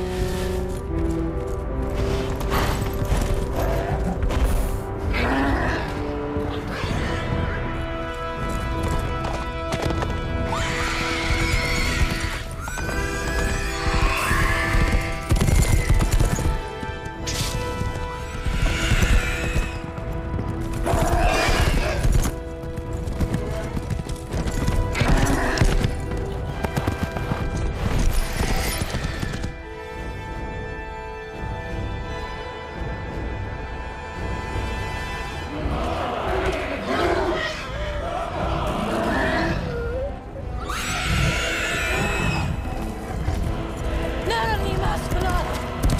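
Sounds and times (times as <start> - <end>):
orchestral score: 0.0 - 45.9
galloping hooves: 0.1 - 4.8, 6.4 - 36.9, 41.0 - 45.9
horse whinnies: 10.4 - 16.4, 18.4 - 19.8, 39.0 - 42.8.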